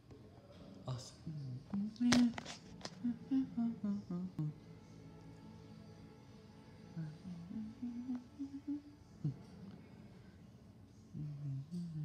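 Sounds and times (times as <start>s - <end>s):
person humming: 1.3s - 4.6s, 7.0s - 9.6s, 11.2s - 12.0s.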